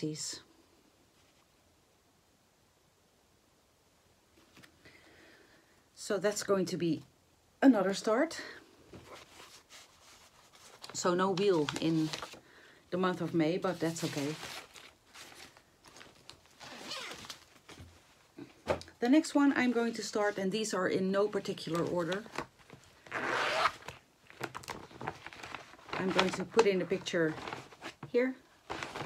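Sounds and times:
faint rustling and scratching: 1.0s - 1.7s, 8.8s - 12.4s, 23.7s - 29.0s.

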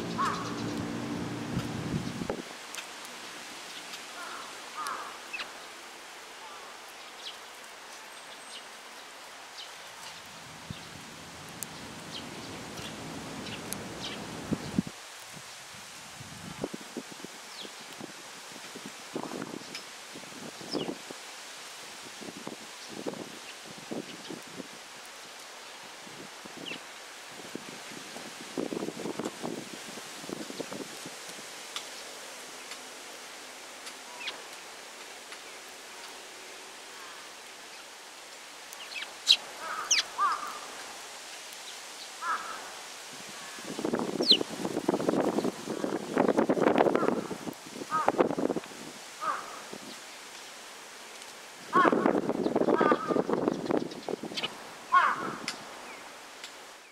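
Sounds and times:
low hum: 0.0s - 2.3s
sparrow chirps: 44.2s - 44.4s.

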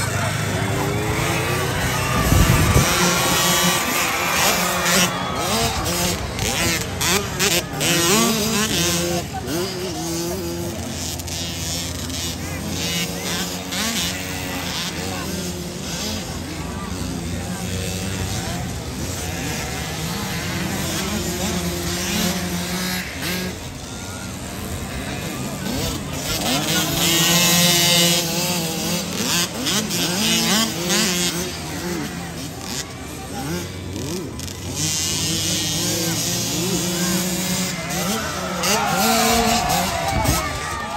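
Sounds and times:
dirt bike engines revving: 0.0s - 40.9s
voices: 0.0s - 40.9s.

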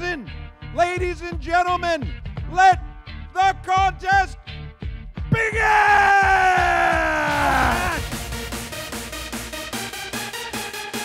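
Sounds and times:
announcer shouting into microphone: 0.8s - 4.4s, 5.3s - 8.0s.

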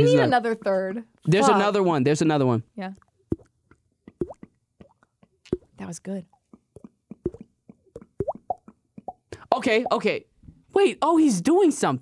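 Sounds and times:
mouth pops and clicks: 2.8s - 10.0s.

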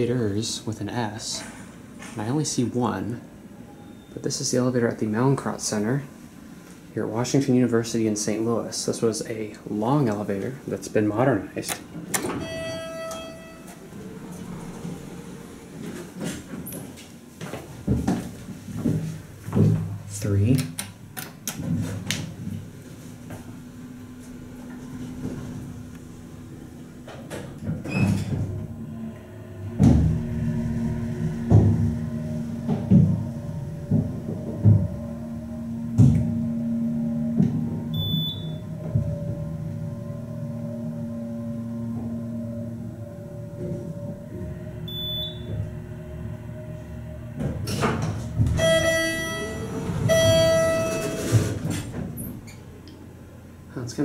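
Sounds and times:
elevator car and doors rattling: 11.8s - 17.0s, 24.6s - 52.8s
two-stroke arrival chime: 12.3s - 13.9s, 36.3s - 38.8s, 48.6s - 51.4s
hydraulic pump motor hum: 22.5s - 53.5s.

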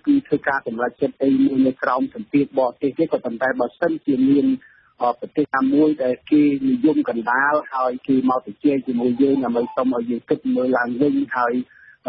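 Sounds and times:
radio news voice talking: 0.0s - 12.0s.

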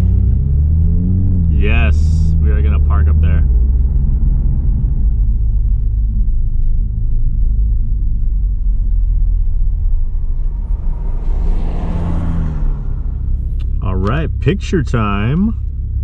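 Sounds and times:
car engine and road rumble: 0.0s - 16.0s.

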